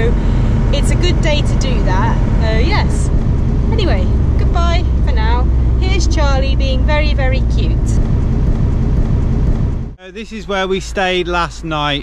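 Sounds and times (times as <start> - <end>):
road and engine rumble in cab: 0.0 - 12.0.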